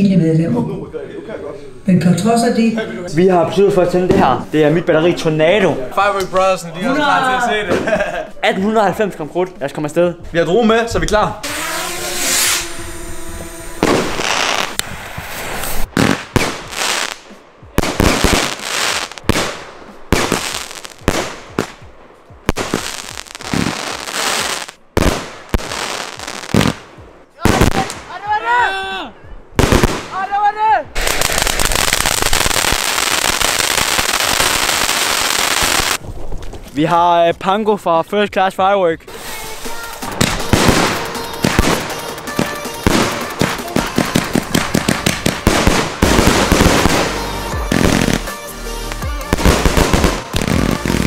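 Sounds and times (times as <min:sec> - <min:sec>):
fireworks firing: 0:11.4 - 0:28.2, 0:29.6 - 0:30.3, 0:30.9 - 0:36.6, 0:39.1 - 0:51.0.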